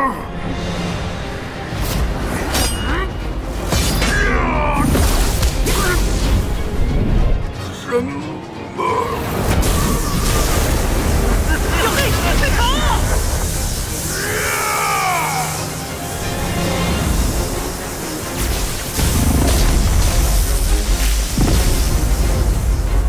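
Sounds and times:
dramatic score music: 0.0s - 23.0s.

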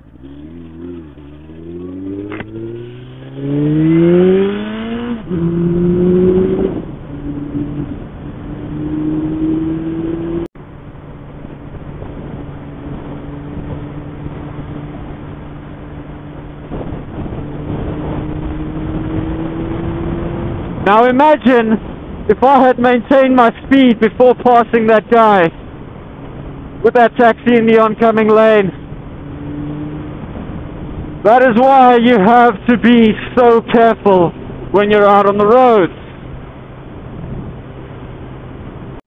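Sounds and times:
motorcycle engine accelerating: 0.0s - 22.3s, 25.5s - 39.0s
wind rush: 0.0s - 39.0s.

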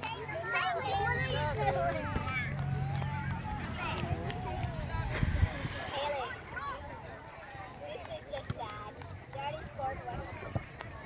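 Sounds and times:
steady low rumble: 2.0s - 6.8s.

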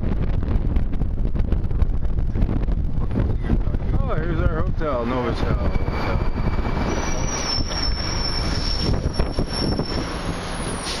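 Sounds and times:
low outdoor rumble: 0.0s - 6.6s
high-pitched squeal: 4.8s - 11.0s.

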